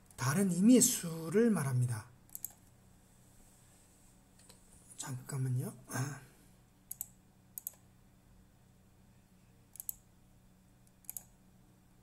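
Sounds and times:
faint steady hum: 0:00.0 - 0:12.0
sharp computer clicks: 0:02.3 - 0:02.7, 0:06.9 - 0:07.9, 0:09.7 - 0:10.1, 0:10.8 - 0:11.4.

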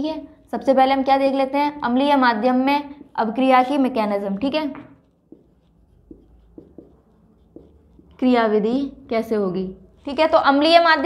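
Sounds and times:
marker pen writing on whiteboard: 0:01.4 - 0:10.8
light pen stroke ticks: 0:05.0 - 0:08.3.

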